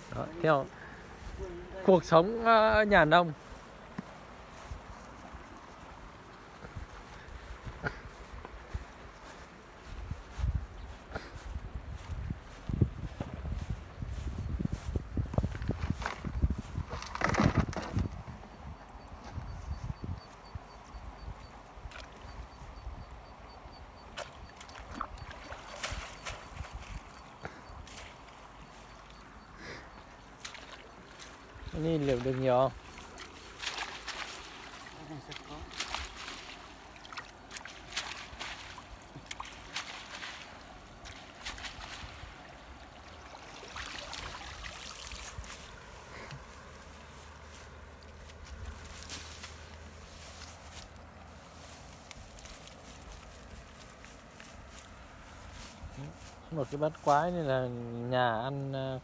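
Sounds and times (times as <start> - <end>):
footsteps on muddy riverbank: 0.0 - 59.0.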